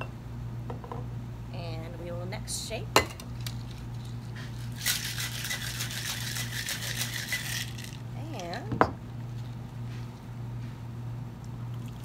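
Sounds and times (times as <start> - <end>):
ice rattling in cocktail shaker: 3.4 - 8.0.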